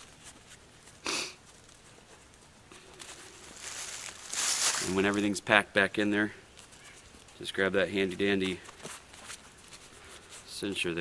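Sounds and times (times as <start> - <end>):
fabric rustling: 3.0 - 5.0.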